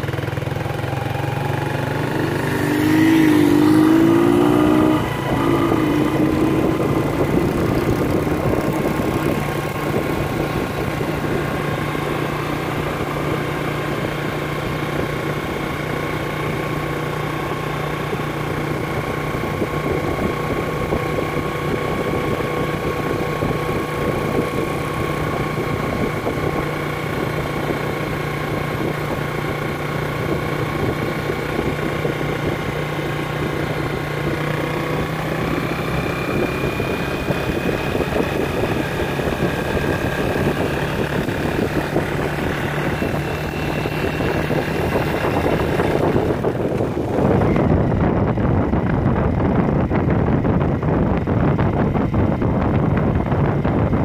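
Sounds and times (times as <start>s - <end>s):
motorcycle engine cruising: 0.0s - 54.0s.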